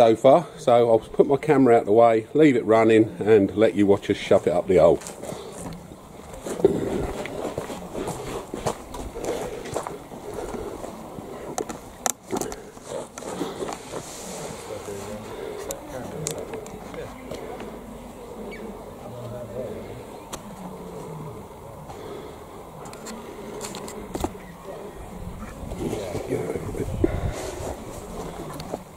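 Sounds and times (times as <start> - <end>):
muffled voices: 0.0 - 28.9
camera handling noise: 22.8 - 24.4.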